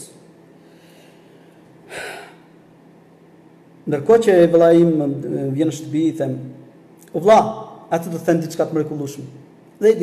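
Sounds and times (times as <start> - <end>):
man's sharp intake of breath: 0.6 - 2.6.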